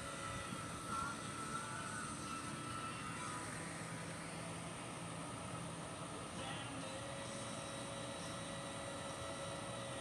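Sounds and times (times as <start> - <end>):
faint distant hum: 0.0 - 10.0.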